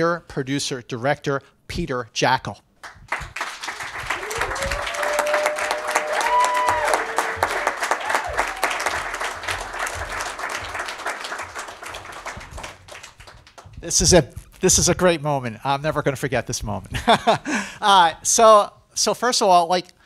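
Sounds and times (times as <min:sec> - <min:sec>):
audience applause: 0:02.8 - 0:13.8.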